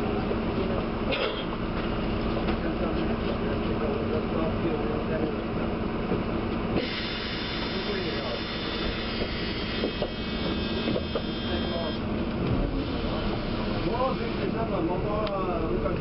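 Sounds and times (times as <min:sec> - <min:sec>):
people talking: 0:02.4 - 0:05.6, 0:07.6 - 0:08.6, 0:11.2 - 0:12.0, 0:12.6 - 0:16.0
steady high whine: 0:06.8 - 0:12.2.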